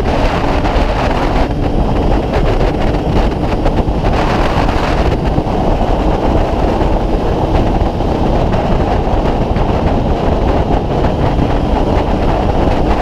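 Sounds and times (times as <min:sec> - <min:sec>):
motorcycle engine cruising: 0:00.0 - 0:13.0
wind and road rush: 0:00.0 - 0:13.0.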